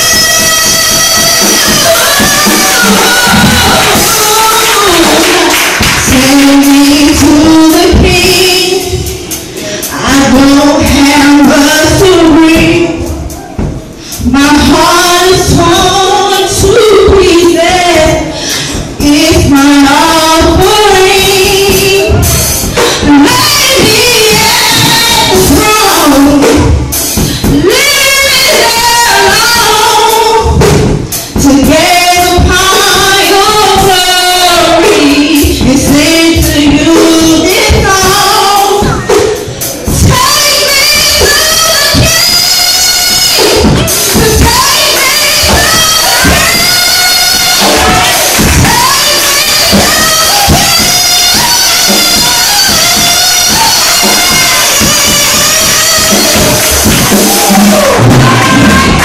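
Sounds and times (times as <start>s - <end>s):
church band playing: 0.0s - 59.0s
crowd noise: 0.0s - 59.0s
girl singing gospel song: 0.0s - 59.0s
live drums: 0.0s - 59.0s.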